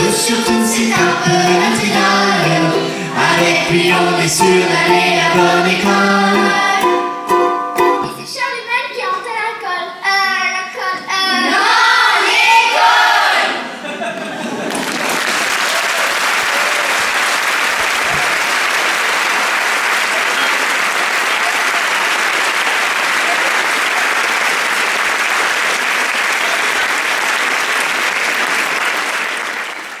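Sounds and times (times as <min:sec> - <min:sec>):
audience applauding: 0:14.1 - 0:30.0.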